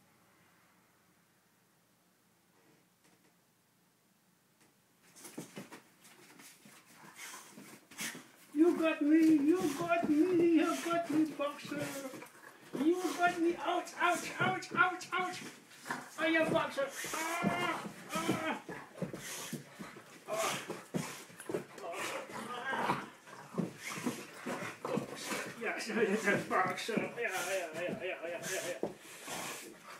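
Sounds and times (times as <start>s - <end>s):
dog scuffling: 5.0s - 29.9s
dog breathing: 6.9s - 29.9s.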